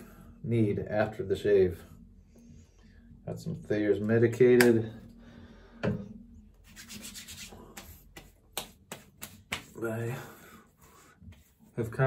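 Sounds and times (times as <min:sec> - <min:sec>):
wet hands rubbing face: 0:06.6 - 0:09.8.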